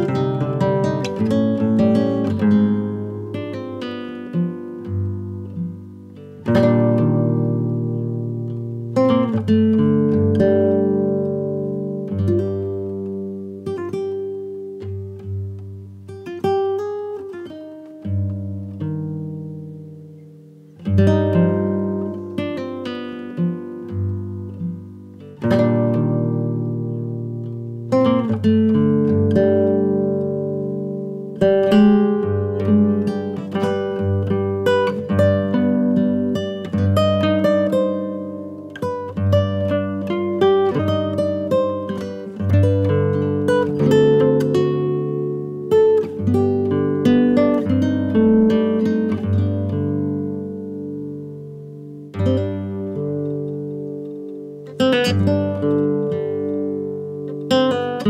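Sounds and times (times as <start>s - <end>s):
solo guitar plucked notes: 0.0s - 58.0s.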